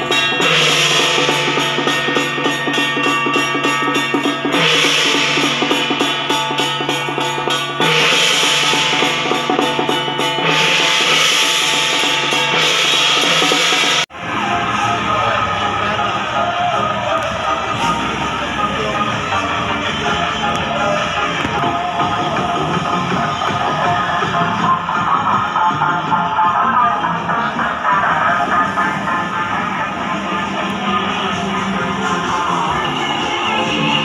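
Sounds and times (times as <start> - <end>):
procession music with drums: 0.0 - 34.0.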